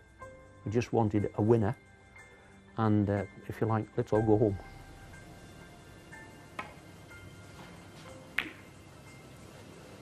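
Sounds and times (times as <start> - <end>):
faint background music: 0.0 - 10.0
snooker ball click: 8.4 - 8.7.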